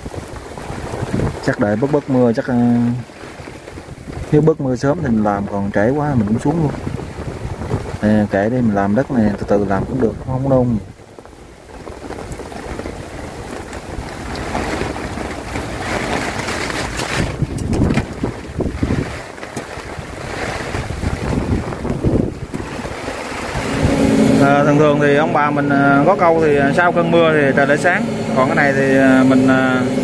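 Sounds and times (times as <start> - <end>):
rain: 0.0 - 30.0
wind buffeting microphone: 0.0 - 30.0.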